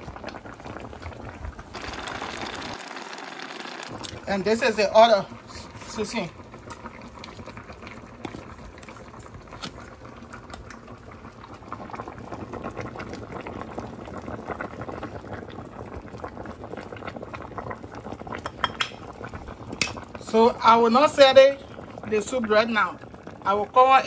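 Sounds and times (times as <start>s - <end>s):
soup boiling and bubbling: 0.0s - 24.0s.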